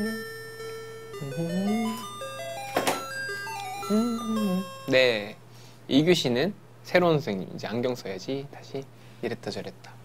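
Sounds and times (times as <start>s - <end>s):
glockenspiel-like chime tune: 0.0s - 5.2s.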